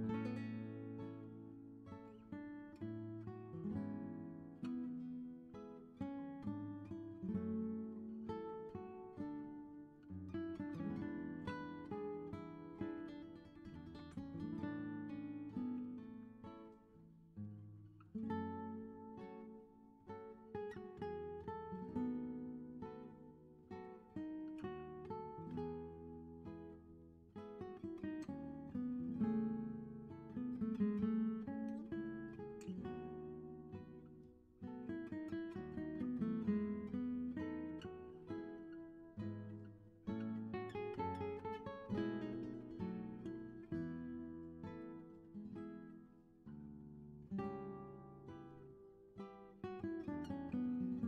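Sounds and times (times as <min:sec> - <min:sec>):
acoustic guitar chords: 0:00.0 - 0:51.0.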